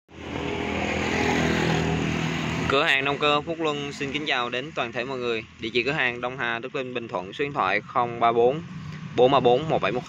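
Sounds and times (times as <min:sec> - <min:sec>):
small engine running: 0:00.1 - 0:04.8.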